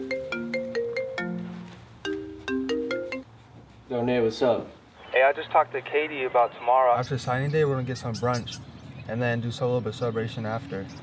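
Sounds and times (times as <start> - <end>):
smartphone ringtone melody: 0.0 - 3.3.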